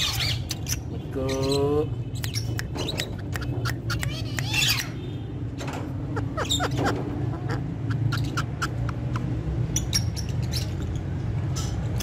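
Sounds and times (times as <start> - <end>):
parakeet squawk: 0.0 - 1.6, 2.2 - 5.0, 6.0 - 12.0
parakeet clicks and chirps: 0.1 - 0.9, 2.0 - 5.0, 5.6 - 12.0.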